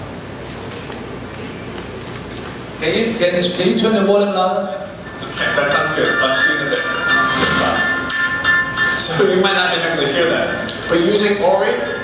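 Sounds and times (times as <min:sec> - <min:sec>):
large hall room noise: 0:00.0 - 0:12.0
faint high squeaks and clicks: 0:00.3 - 0:02.6.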